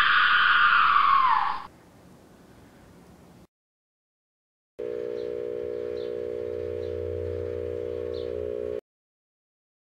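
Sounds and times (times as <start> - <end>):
microwave oven humming: 4.8 - 8.8.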